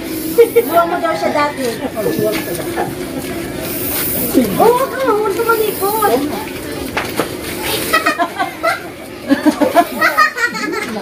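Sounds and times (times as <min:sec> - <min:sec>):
hiss: 0:03.7 - 0:04.4.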